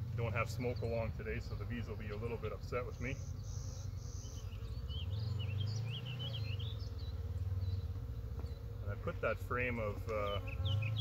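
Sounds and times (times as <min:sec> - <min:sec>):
honey bees buzzing: 0:00.0 - 0:11.0
small bird chirping: 0:00.6 - 0:08.9, 0:10.1 - 0:11.0.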